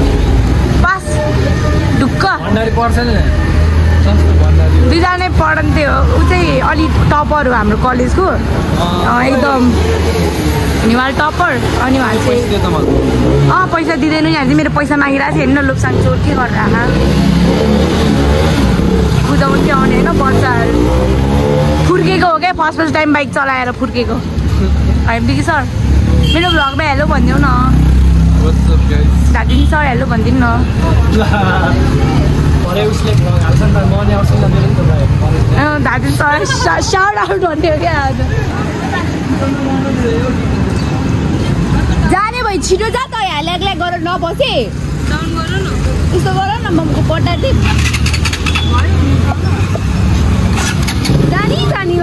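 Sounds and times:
people's voices: 0:00.0 - 0:52.0
vehicle engine rumbling: 0:00.0 - 0:52.0.

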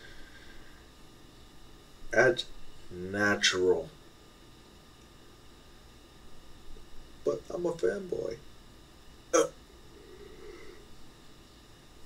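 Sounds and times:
faint low vocal hum: 0:00.0 - 0:05.6, 0:06.3 - 0:08.6, 0:09.2 - 0:12.0.

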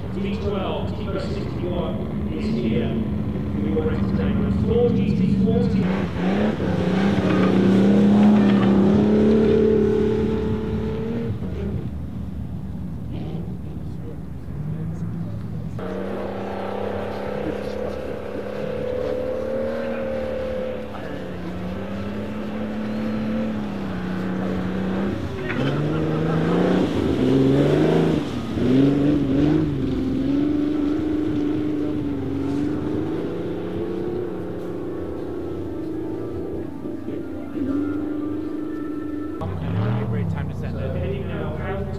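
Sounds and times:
racing car engines revving: 0:00.0 - 0:41.9.

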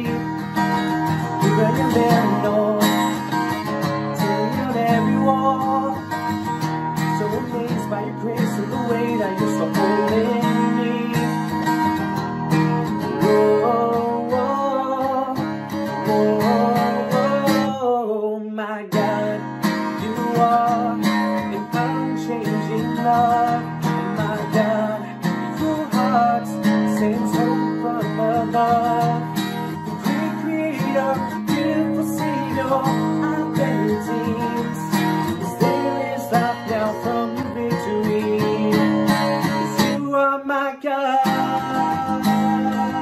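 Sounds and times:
acoustic guitar strumming: 0:00.0 - 0:43.0
man singing: 0:00.0 - 0:43.0.

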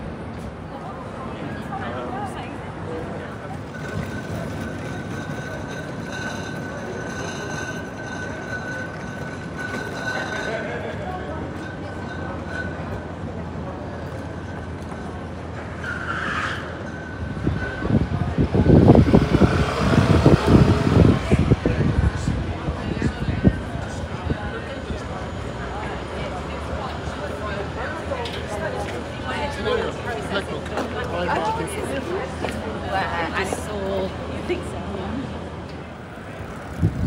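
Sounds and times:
passing traffic: 0:00.0 - 0:37.0
wind buffeting microphone: 0:17.0 - 0:24.9, 0:36.4 - 0:37.0.

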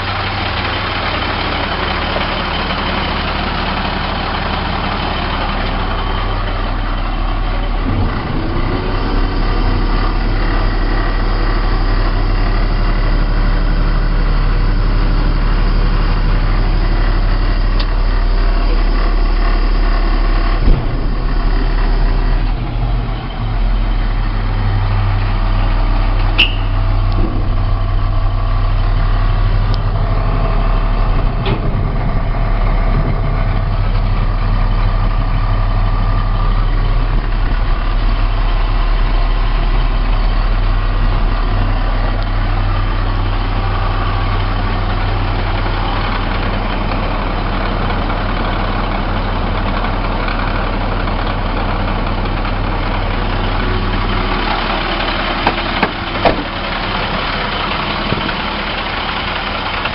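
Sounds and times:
diesel engine idling: 0:00.0 - 0:59.9.

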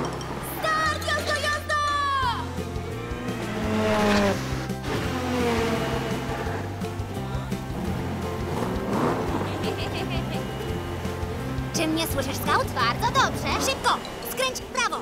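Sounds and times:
background music: 0:00.0 - 0:15.0
cartoon cars whooshing past: 0:02.9 - 0:06.7.

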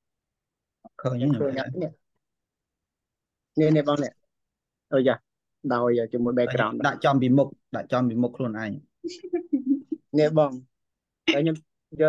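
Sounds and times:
man speaking: 0:00.9 - 0:02.0, 0:03.6 - 0:04.2, 0:04.9 - 0:08.9, 0:11.3 - 0:12.0.

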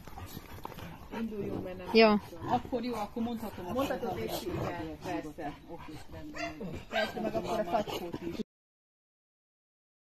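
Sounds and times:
people's voices: 0:01.1 - 0:08.4.

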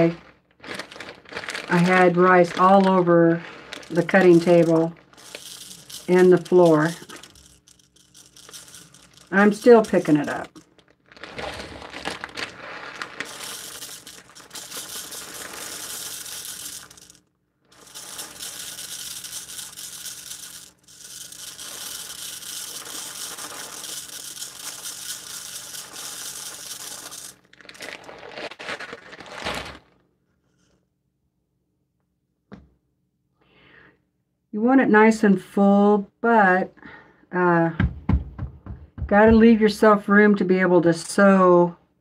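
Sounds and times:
rice grains pouring: 0:00.0 - 0:29.8.

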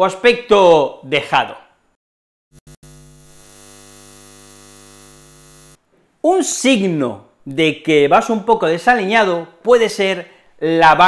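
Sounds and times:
electrical hum: 0:02.5 - 0:05.8.

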